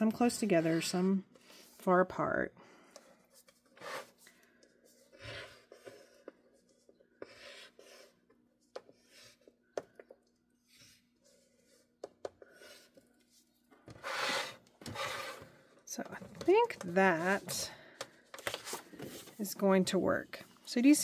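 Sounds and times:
board sliding rub: 0:14.0 - 0:15.4
stylus scratching cardstock: 0:14.0 - 0:15.4.

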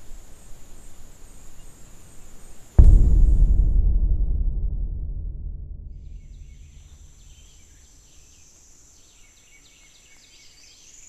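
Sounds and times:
low rumble: 0:02.8 - 0:07.6.

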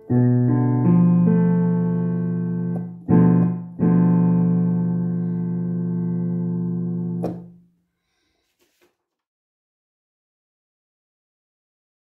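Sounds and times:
digital piano chord: 0:00.0 - 0:07.5.

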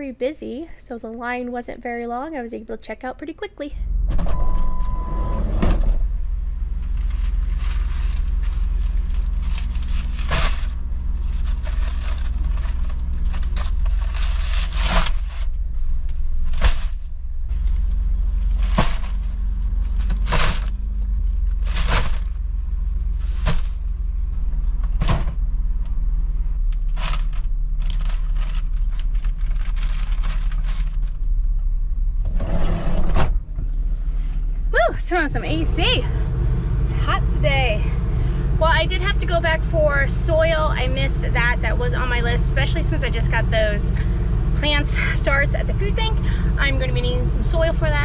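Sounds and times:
steady low hum: 0:00.0 - 0:48.0
plastic packaging crinkling: 0:07.0 - 0:15.5, 0:26.9 - 0:31.2
items knocking and thudding: 0:18.5 - 0:20.9, 0:23.3 - 0:25.5.

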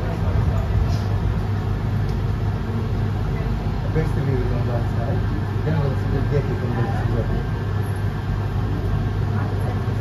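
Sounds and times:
faint voices: 0:00.0 - 0:01.9
low engine rumble: 0:00.0 - 0:10.0.

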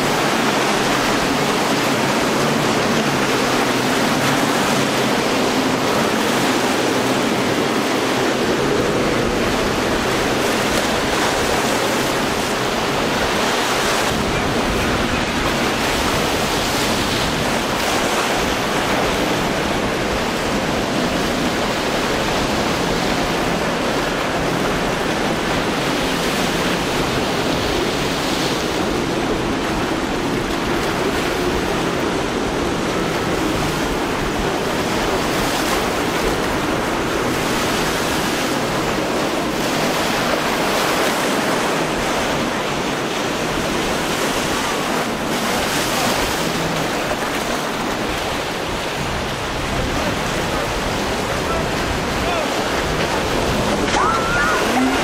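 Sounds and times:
breaking surf: 0:00.0 - 0:55.0
wind on microphone: 0:00.0 - 0:55.0.

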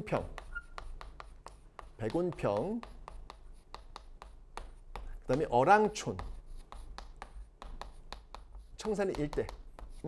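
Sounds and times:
chalk writing on a blackboard: 0:00.0 - 0:10.0.

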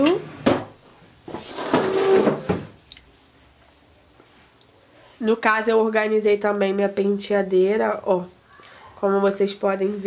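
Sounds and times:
desk drawer sliding shut: 0:01.4 - 0:02.7.

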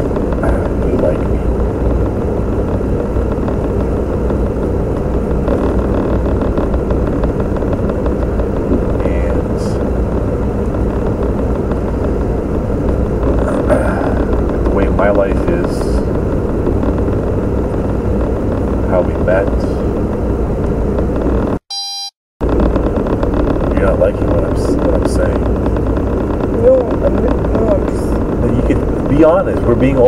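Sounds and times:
steady low rumble: 0:00.0 - 0:21.6, 0:22.4 - 0:30.0
short electronic beep: 0:21.7 - 0:22.2
muffled conversation: 0:26.4 - 0:30.0.

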